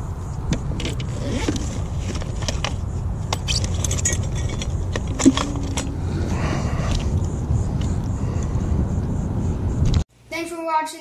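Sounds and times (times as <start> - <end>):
fishing tackle clicking and rattling: 3.6 - 5.9
low rumble: 3.8 - 10.0.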